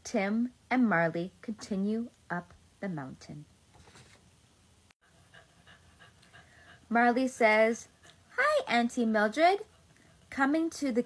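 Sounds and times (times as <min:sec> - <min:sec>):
dog panting: 0:05.0 - 0:10.6.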